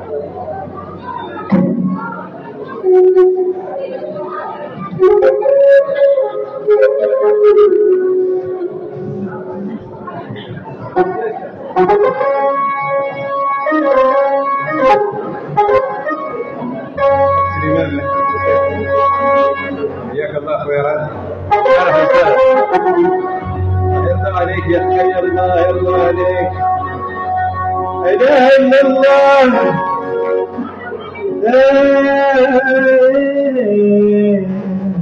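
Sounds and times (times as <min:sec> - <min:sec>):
electronic keyboard held notes: 0:00.0 - 0:33.4
people chattering: 0:00.0 - 0:35.0
low bass note: 0:16.7 - 0:31.6.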